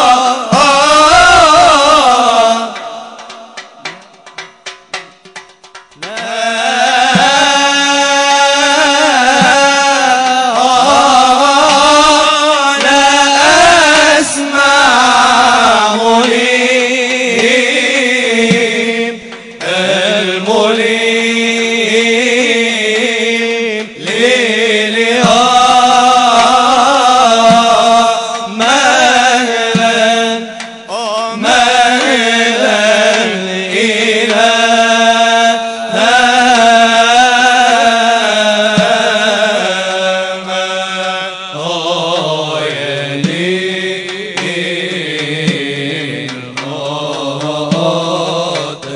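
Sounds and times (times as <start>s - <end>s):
man chanting devotional song: 0.0s - 48.9s.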